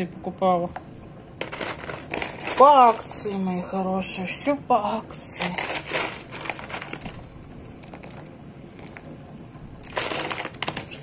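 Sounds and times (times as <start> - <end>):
frozen vegetables clattering in bowl: 1.4 - 3.4, 5.2 - 7.2, 9.8 - 11.0.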